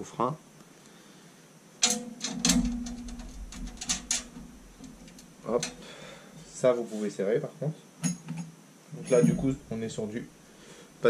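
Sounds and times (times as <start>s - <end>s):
light metal clicks: 1.8s - 5.8s
low rumble of frame handled: 2.0s - 5.9s.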